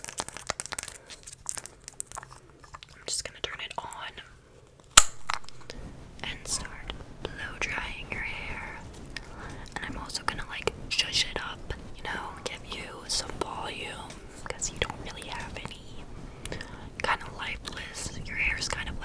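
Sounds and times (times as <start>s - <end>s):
person whispering: 2.8s - 4.4s, 6.2s - 19.0s
sharp click: 5.0s - 5.6s.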